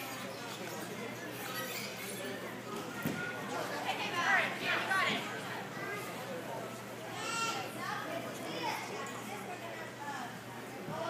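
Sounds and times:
girls chattering: 0:03.3 - 0:06.5.

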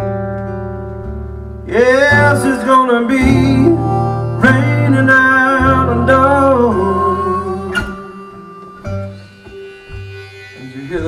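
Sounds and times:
slide resonator guitar: 0:00.0 - 0:11.0
person singing: 0:01.7 - 0:09.6
harmonica bending notes: 0:01.7 - 0:11.0.

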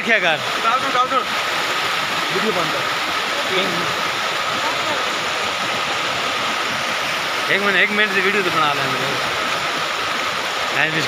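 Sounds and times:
stream rushing over rocks: 0:00.0 - 0:11.0.

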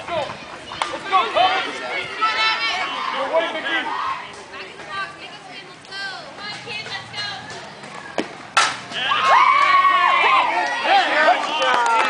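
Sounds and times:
spectators yelling and cheering: 0:00.0 - 0:04.8, 0:06.2 - 0:12.0
softball bat hitting ball: 0:08.2 - 0:09.1.

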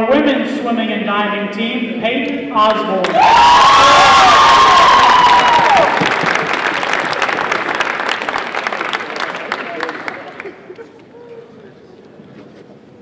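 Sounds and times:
high cheer: 0:03.0 - 0:10.6
audience applauding: 0:03.0 - 0:10.8.

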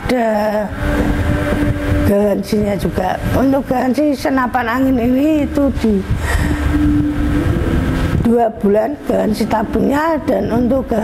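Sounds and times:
low engine rumble: 0:00.0 - 0:11.0
held tone: 0:00.7 - 0:03.8, 0:04.6 - 0:11.0.

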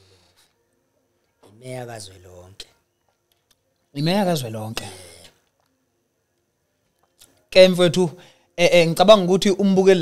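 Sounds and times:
man speaking: 0:01.4 - 0:02.8, 0:04.0 - 0:05.4.

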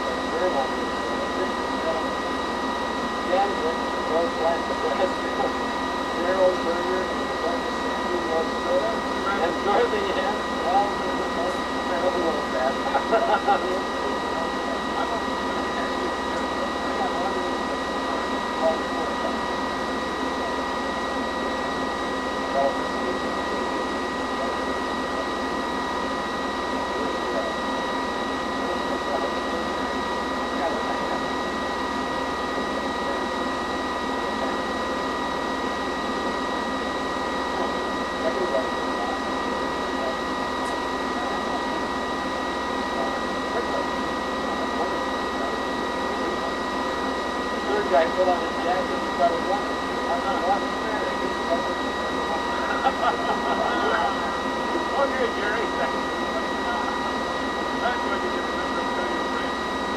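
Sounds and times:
tape recorder headwheel whine: 0:00.0 - 0:59.9.

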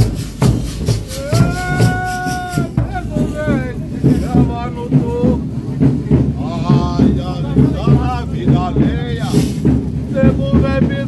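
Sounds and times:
large drum beats: 0:00.0 - 0:11.0.

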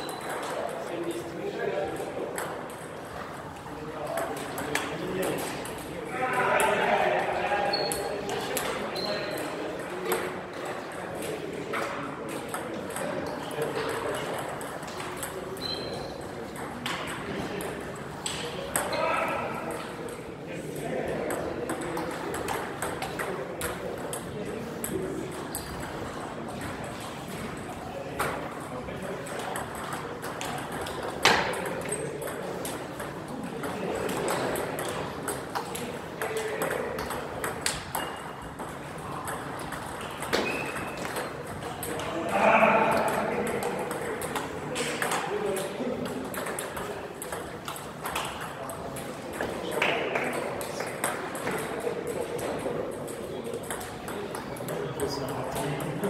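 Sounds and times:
murmur of voices: 0:00.0 - 0:56.0
table tennis ball bouncing: 0:01.8 - 0:06.9, 0:07.7 - 0:27.6, 0:28.2 - 0:56.0.

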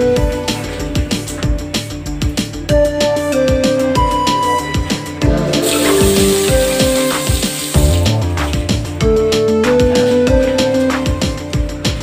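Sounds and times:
background music with steady beat: 0:00.0 - 0:12.0
water hissing from faucet: 0:05.5 - 0:08.9.

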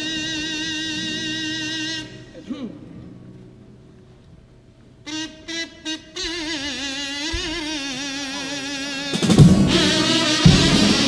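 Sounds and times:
person singing long vibrato note: 0:06.2 - 0:11.0
bass drum and snare: 0:09.1 - 0:11.0.

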